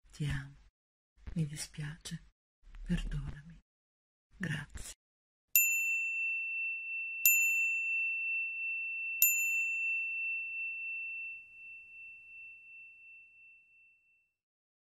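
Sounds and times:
small high-pitched bell ringing: 0:05.6 - 0:14.4.

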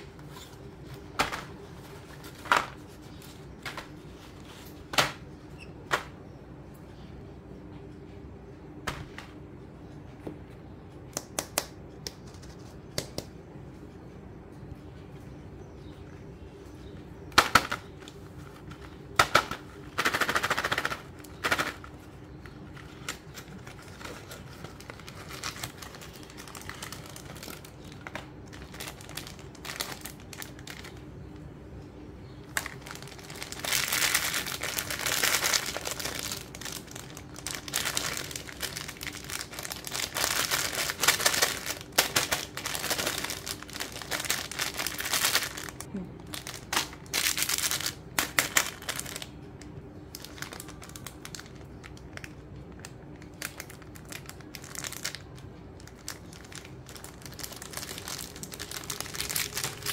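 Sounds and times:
plastic wrappers crinkling: 0:17.4 - 0:31.5, 0:32.3 - 0:59.9.

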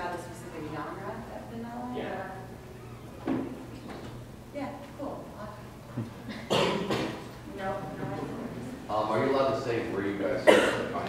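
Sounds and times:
loud cough: 0:06.3 - 0:07.2, 0:10.4 - 0:11.0.

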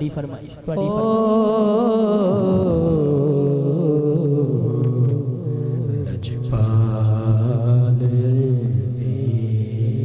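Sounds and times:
man singing through a microphone: 0:00.6 - 0:10.0.

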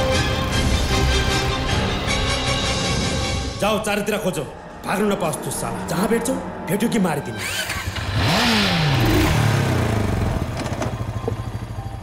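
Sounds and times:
motorcycle engines revving: 0:07.4 - 0:12.0.

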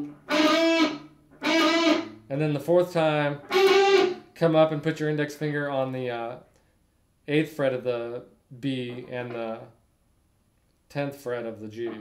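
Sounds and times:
electric guitar lick with bend: 0:00.0 - 0:02.2, 0:03.5 - 0:04.2.

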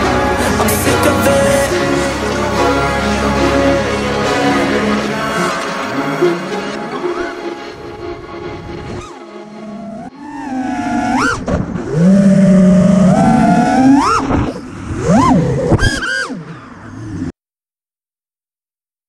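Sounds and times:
quadcopter motors whining: 0:09.0 - 0:17.2.

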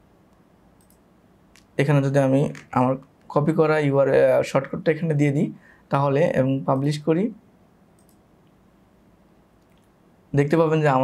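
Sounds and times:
computer mouse clicks: 0:00.3 - 0:01.7, 0:08.0 - 0:08.6, 0:09.6 - 0:10.0
man talking: 0:01.8 - 0:07.4, 0:10.3 - 0:11.0.

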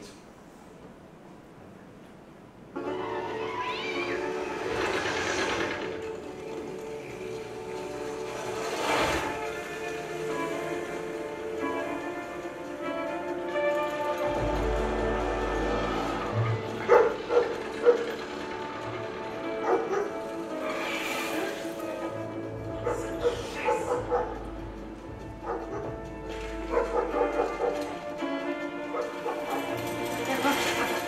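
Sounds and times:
film music over loudspeakers: 0:02.4 - 0:31.0.

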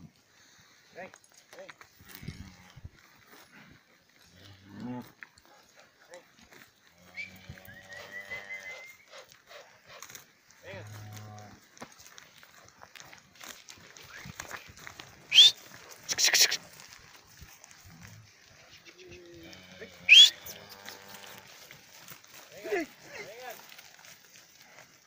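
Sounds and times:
cows mooing: 0:19.0 - 0:21.6.

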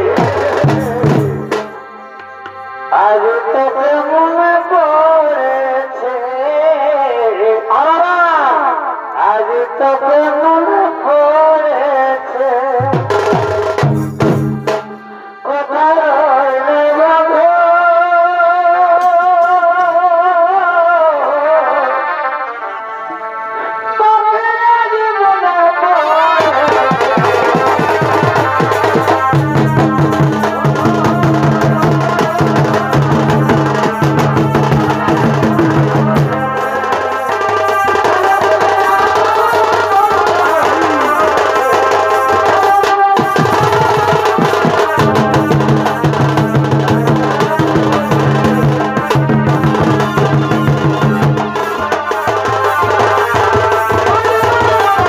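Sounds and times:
drums playing fast beat: 0:00.0 - 0:02.7, 0:12.8 - 0:15.2, 0:26.4 - 0:55.0
wind instrument melody: 0:00.0 - 0:04.8, 0:13.1 - 0:17.0, 0:21.2 - 0:55.0.

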